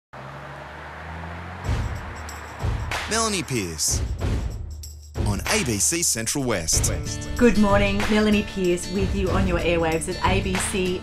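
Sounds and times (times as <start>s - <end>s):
car engine hum: 0.1s - 4.0s.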